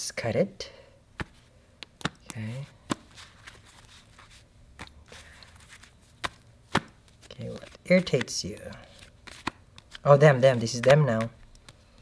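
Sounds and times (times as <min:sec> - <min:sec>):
cards tapping on cloth mat: 0:01.2 - 0:03.6, 0:05.6 - 0:12.0.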